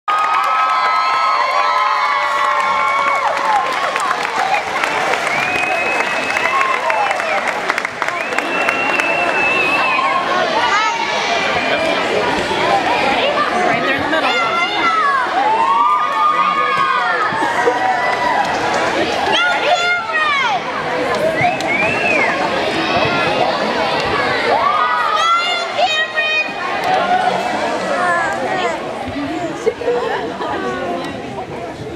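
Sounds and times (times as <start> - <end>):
scattered clapping: 0.1 - 9.8, 16.1 - 19.3
children talking and calling out: 10.1 - 31.6
children shouting and whooping: 14.2 - 18.5.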